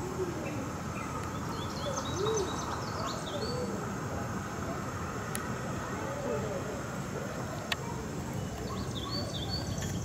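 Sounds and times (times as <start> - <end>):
low hooting bird calls: 0.0 - 3.9
steady background hiss: 0.0 - 10.0.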